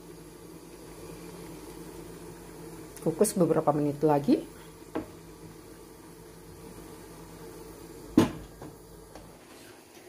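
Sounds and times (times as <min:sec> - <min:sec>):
steaming pot hum: 0:00.0 - 0:10.0.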